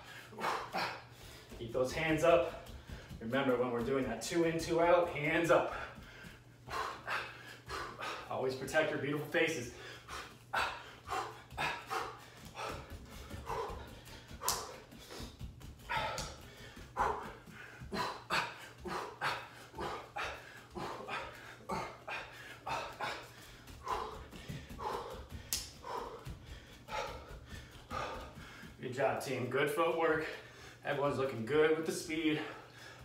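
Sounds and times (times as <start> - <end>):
man breathing sharply and grunting: 0.0 - 3.2, 4.8 - 28.8, 30.1 - 30.9, 32.2 - 33.0
quick footsteps: 0.0 - 33.0.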